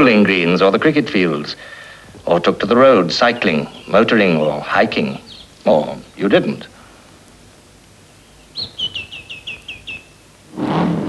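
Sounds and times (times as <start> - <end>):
film hiss: 0.0 - 11.0
small bird chirping: 3.0 - 6.7, 8.1 - 10.4.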